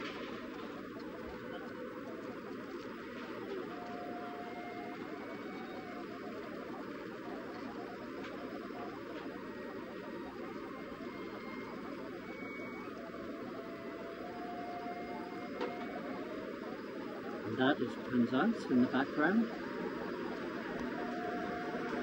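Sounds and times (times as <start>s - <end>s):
faint hum: 0.0s - 22.0s.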